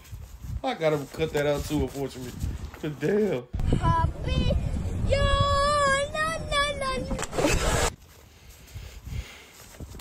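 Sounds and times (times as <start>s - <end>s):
child singing long note: 3.7s - 7.2s.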